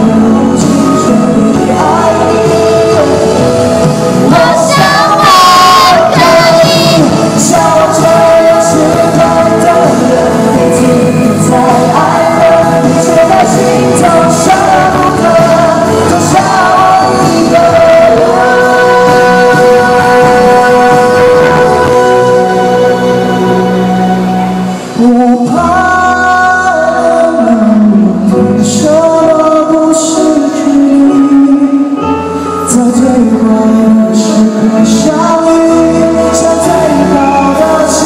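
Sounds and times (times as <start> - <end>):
backing music: 0.0 - 38.0
man singing into a microphone: 0.0 - 38.0.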